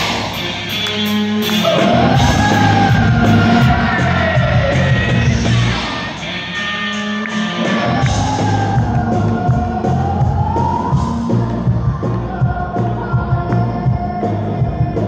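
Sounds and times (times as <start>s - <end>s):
rock band playing live: 0.0s - 15.0s
singer holding long notes: 0.0s - 15.0s.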